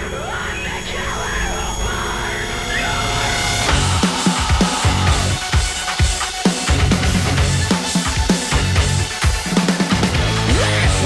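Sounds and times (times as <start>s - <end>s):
background music: 0.0s - 11.0s
people shouting: 3.6s - 5.7s.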